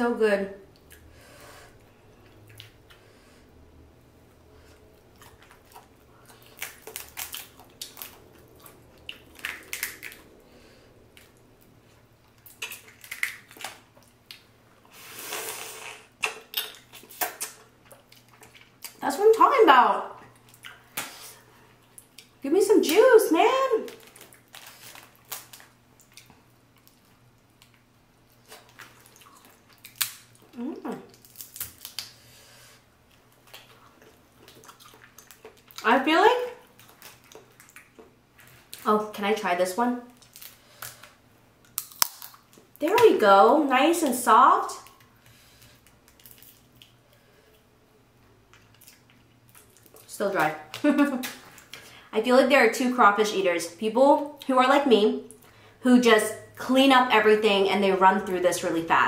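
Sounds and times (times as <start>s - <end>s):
wet squishing: 4.7s - 10.4s, 44.8s - 47.2s
wet sucking sound: 14.9s - 16.2s
shell cracks and snaps: 29.8s - 30.3s, 31.2s - 32.1s, 41.7s - 42.5s
person humming mmm: 30.5s - 31.1s.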